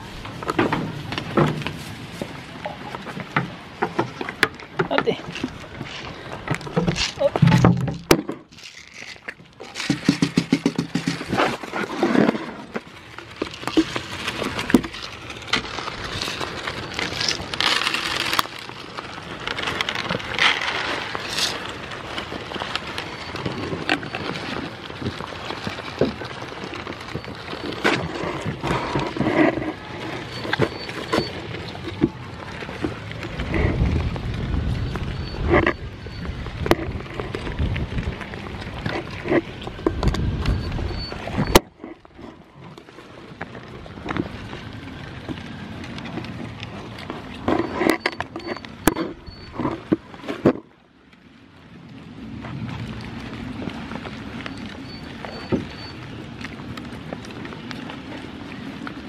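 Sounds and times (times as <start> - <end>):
low bumps: 0.0 - 17.8
goats eating seeds off wood: 0.0 - 50.8, 52.2 - 59.0.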